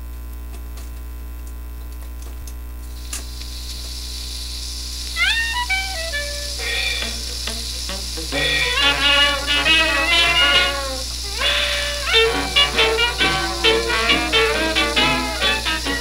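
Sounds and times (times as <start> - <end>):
mains hum: 0.0 - 16.0
record surface hiss: 0.0 - 16.0
jazz band on a record: 5.0 - 16.0
sliding upward notes: 5.2 - 16.0.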